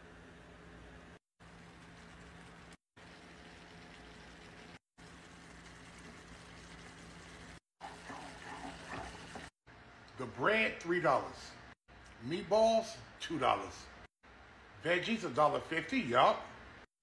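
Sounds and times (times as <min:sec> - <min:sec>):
milk boiling in a saucepan: 0:01.1 - 0:09.6.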